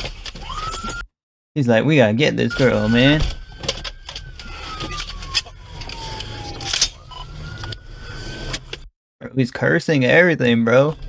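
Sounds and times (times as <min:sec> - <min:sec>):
police siren wailing: 0:00.4 - 0:01.1, 0:02.3 - 0:08.8
car engine and road rumble: 0:02.4 - 0:08.9.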